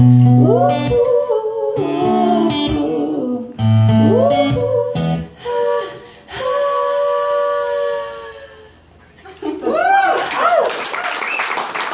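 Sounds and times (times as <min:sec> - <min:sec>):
women singing in harmony: 0:00.2 - 0:08.9.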